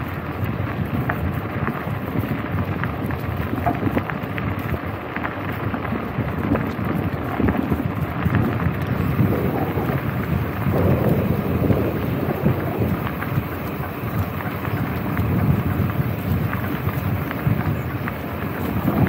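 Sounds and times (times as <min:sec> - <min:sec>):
bicycle tyres rolling on gravel: 0:00.0 - 0:19.0
wind buffeting microphone: 0:00.0 - 0:19.0.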